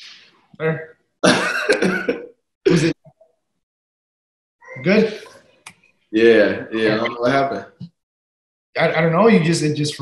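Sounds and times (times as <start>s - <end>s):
man laughing over video call: 1.2s - 3.0s.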